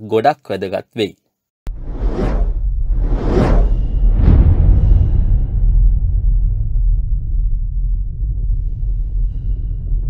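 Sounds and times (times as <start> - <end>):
cinematic whooshes: 1.7 - 10.0
deep sustained rumble: 1.7 - 10.0.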